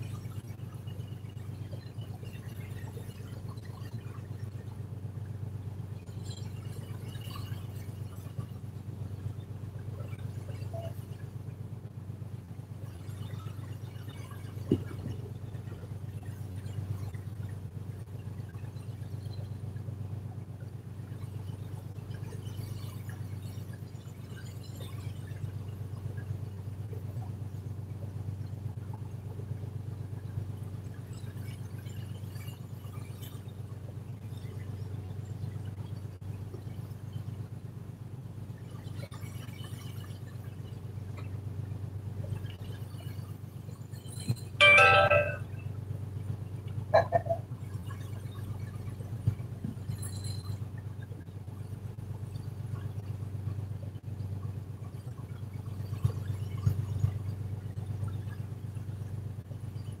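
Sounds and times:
short loud pitched sound: 0:44.6 - 0:45.5
boat engine droning: 0:44.6 - 0:49.6.

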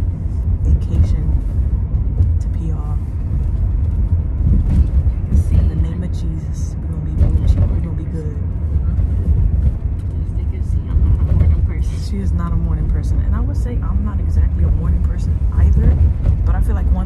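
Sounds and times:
road rumble inside car: 0:00.0 - 0:17.0.

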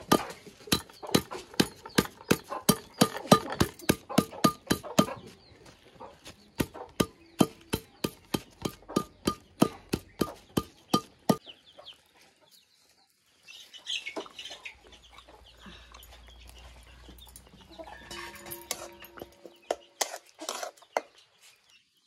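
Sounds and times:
metal pipe pounding bundle: 0:00.0 - 0:05.2, 0:06.6 - 0:11.4, 0:18.0 - 0:19.8
chicken clucking: 0:00.0 - 0:21.4.

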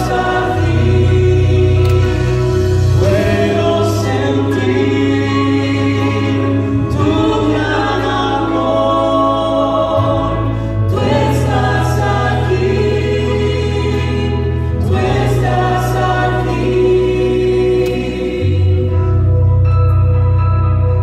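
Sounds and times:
keyboard and bass chords: 0:00.0 - 0:21.0.

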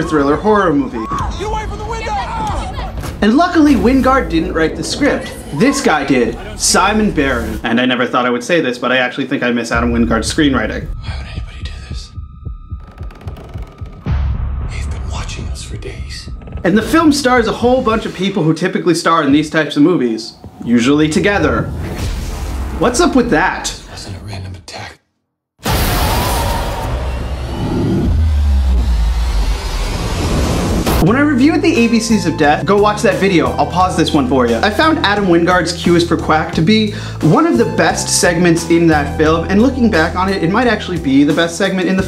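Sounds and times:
low pulse beating: 0:02.3 - 0:07.8, 0:09.8 - 0:18.1
dense rushing noise with deep rumble: 0:03.2 - 0:08.0, 0:27.1 - 0:31.0.

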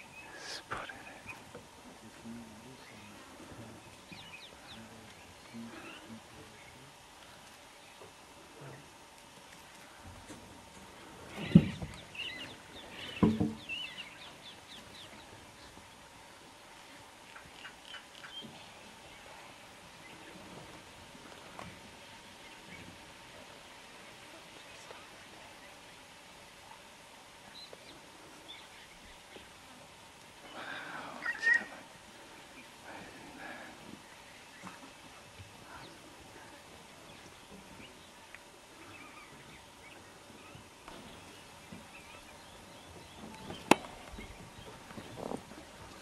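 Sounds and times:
birds chirping: 0:00.0 - 0:46.0.

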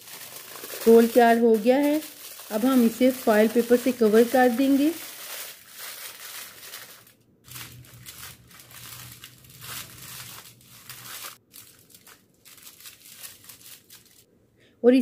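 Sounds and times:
aluminium foil crinkling: 0:00.0 - 0:14.3.

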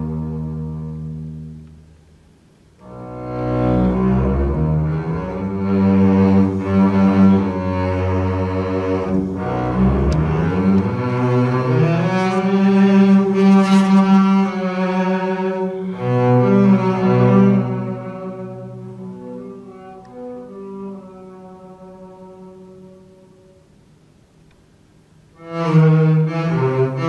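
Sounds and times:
bowed double bass: 0:00.0 - 0:02.0, 0:02.8 - 0:23.8, 0:25.3 - 0:27.0.

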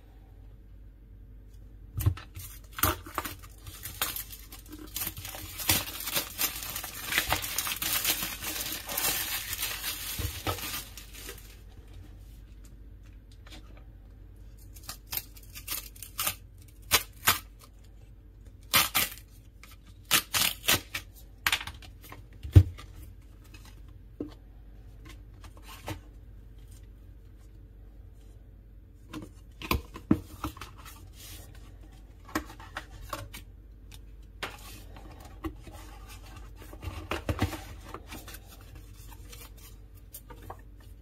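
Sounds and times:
plastic shrink-wrap tearing: 0:02.4 - 0:11.6, 0:14.7 - 0:17.6, 0:18.6 - 0:19.4, 0:20.0 - 0:21.1.

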